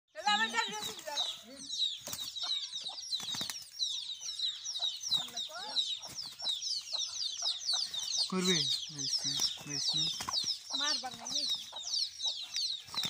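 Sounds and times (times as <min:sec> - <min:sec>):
chickens peeping and squawking: 0:00.2 - 0:13.0.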